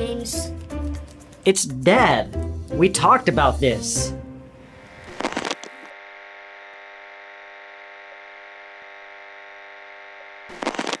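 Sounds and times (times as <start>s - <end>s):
electrical buzzing hum: 4.4s - 11.0s
crackling static: 4.7s - 11.0s.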